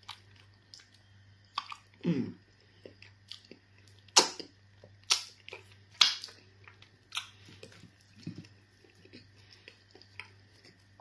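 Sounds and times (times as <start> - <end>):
close chewing: 2.7 - 11.0
wet mouth smacks: 5.1 - 5.3.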